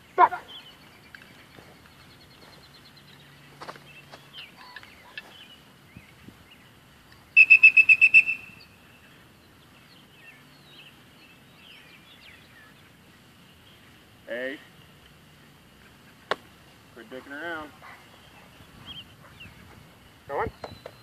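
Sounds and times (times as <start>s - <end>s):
faint bird chirps: 0.2s - 14.0s
dog whistle pips: 7.4s - 8.5s.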